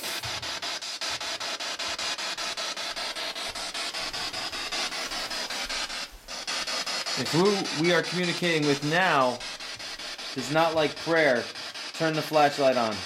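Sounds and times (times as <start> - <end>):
chopped radio static hiss: 0.0 - 13.0.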